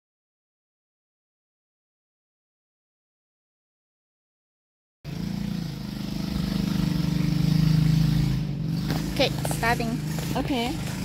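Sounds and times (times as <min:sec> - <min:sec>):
engine humming: 0:05.1 - 0:11.0.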